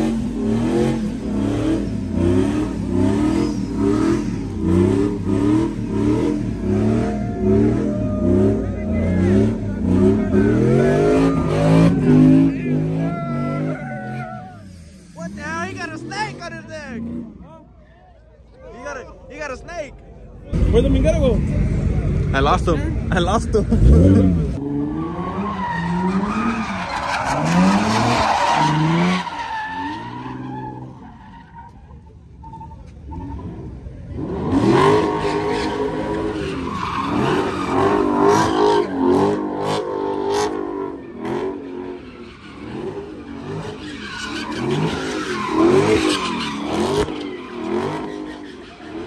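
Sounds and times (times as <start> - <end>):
car engine revving hard: 0.0 - 13.7, 23.7 - 26.6, 34.2 - 42.0, 42.6 - 48.3
tyres squealing and skidding: 0.0 - 17.8, 23.8 - 49.0.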